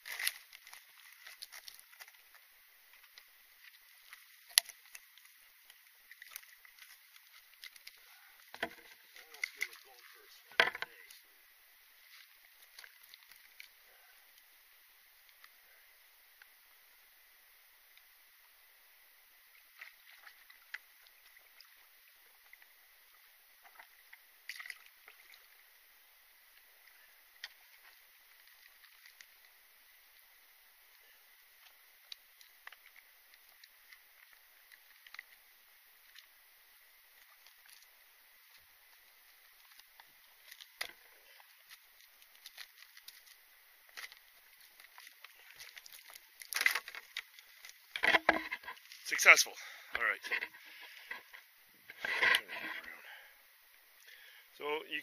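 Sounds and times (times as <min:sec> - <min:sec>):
branches scraping and rustling: 0:00.0 - 0:11.2, 0:39.4 - 0:53.0.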